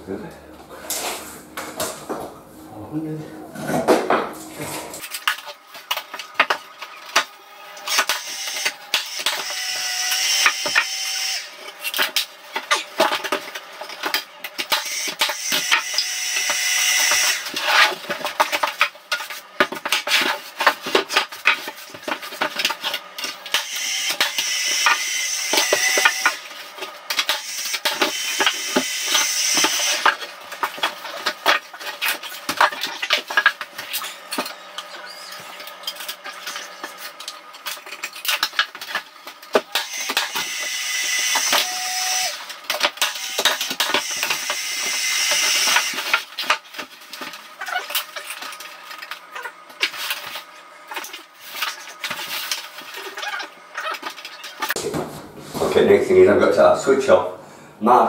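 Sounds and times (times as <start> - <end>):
power tool cutting wood: 7.4 - 11.8, 14.7 - 17.7, 23.5 - 26.5, 27.2 - 30.2, 39.7 - 46.2.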